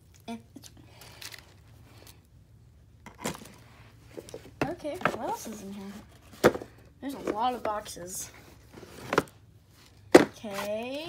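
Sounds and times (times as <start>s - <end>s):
plastic toys handling noise: 0.1s - 2.3s, 3.0s - 11.0s.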